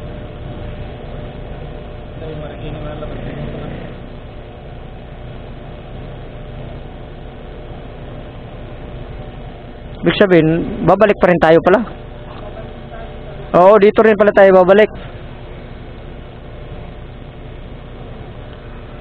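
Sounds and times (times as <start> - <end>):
fuel pump running: 0.0 - 19.0.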